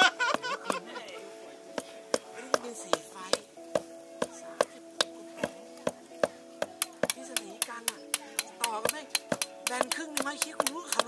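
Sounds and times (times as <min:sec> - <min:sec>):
background music: 0:00.0 - 0:11.0
mallet striking steel tent peg: 0:01.8 - 0:05.2, 0:05.8 - 0:11.0.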